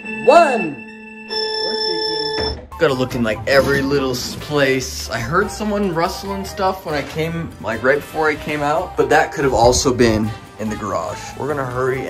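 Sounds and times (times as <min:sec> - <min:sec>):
held electronic tone: 0:00.0 - 0:02.8.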